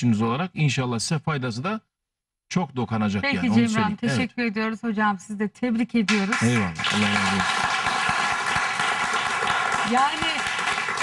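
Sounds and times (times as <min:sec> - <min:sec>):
audience applauding: 0:06.1 - 0:11.0.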